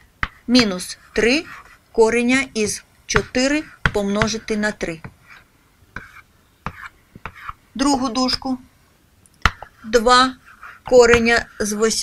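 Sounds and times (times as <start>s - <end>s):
chalk scratching on blackboard: 0.2s - 1.8s, 3.2s - 7.6s, 9.5s - 12.0s
chalk tapping on blackboard: 0.2s - 1.8s, 2.6s - 7.6s, 9.4s - 12.0s.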